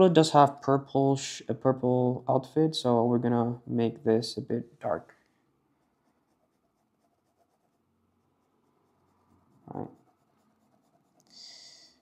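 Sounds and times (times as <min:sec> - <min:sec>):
pen scratching on paper: 0:05.8 - 0:11.4.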